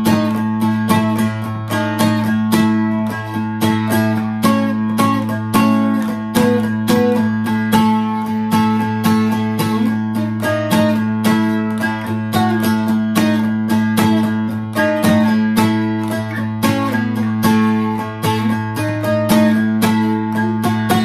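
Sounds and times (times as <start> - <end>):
acoustic guitar flatpicked: 0.0 - 21.0.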